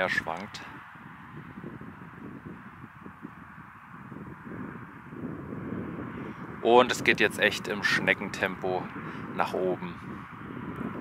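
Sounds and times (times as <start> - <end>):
steady outdoor hiss: 0.0 - 11.0
wind rumbling on microphone: 0.0 - 11.0.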